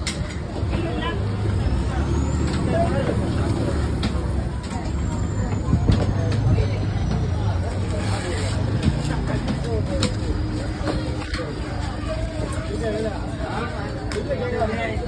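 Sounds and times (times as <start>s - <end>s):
vehicle engine rumble: 0.0s - 14.2s.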